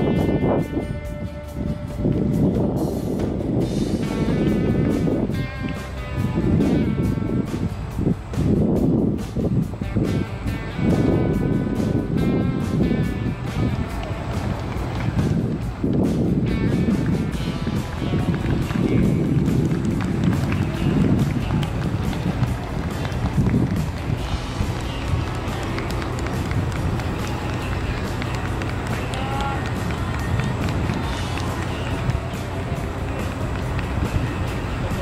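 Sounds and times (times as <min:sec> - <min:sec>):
distant voices: 0:00.0 - 0:35.0
low rumble: 0:00.0 - 0:35.0.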